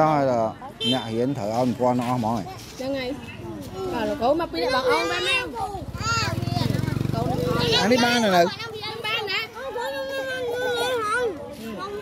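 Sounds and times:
children talking and calling out: 0:01.2 - 0:12.0.

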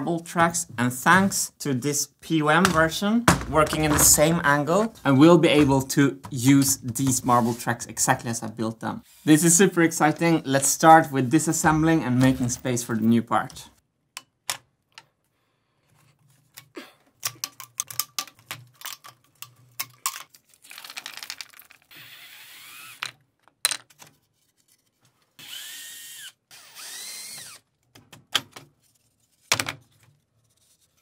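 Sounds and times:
clicks and knocks of parts: 0:16.5 - 0:21.8
cordless drill whining: 0:21.9 - 0:23.0, 0:25.4 - 0:27.6.

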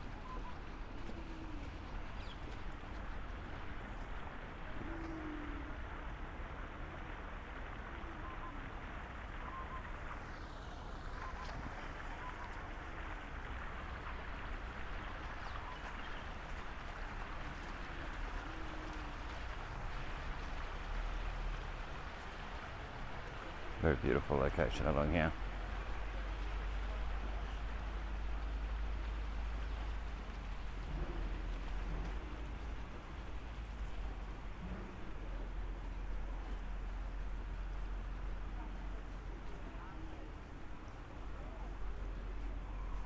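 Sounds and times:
fountain water splashing: 0:00.0 - 0:43.0.

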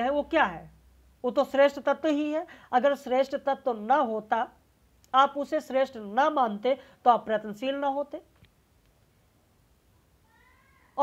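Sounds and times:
faint meow-like call: 0:10.2 - 0:11.0.

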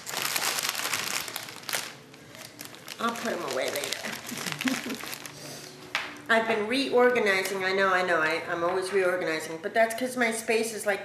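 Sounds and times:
packaging crinkling: 0:00.0 - 0:05.8.

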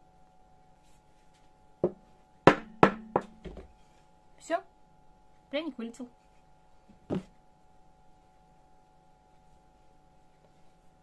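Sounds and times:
wooden mold knocking on table: 0:01.8 - 0:03.7.

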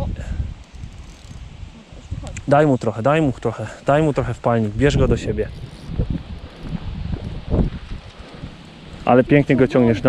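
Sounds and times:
wind buffeting microphone: 0:00.0 - 0:10.0
voice: 0:01.8 - 0:05.6, 0:09.1 - 0:10.0.

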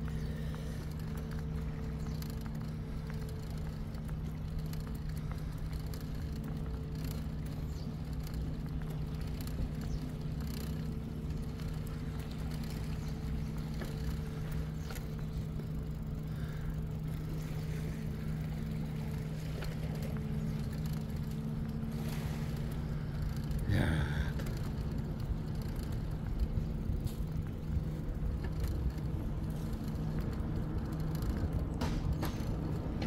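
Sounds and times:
faint ticks: 0:00.0 - 0:31.9
bicycle tyre road noise: 0:00.0 - 0:33.0.

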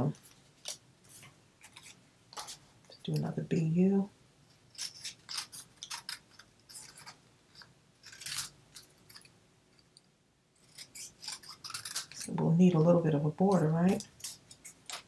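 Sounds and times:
scissors snipping paper: 0:04.7 - 0:09.3, 0:10.6 - 0:12.4, 0:13.5 - 0:15.0.

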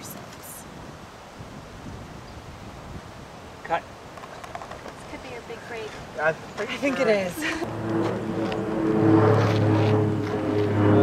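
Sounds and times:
low drone: 0:07.5 - 0:11.0
sustained chord tones: 0:07.6 - 0:11.0.

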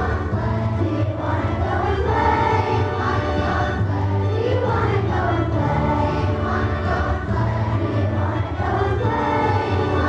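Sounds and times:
children's choir singing: 0:00.0 - 0:10.0.

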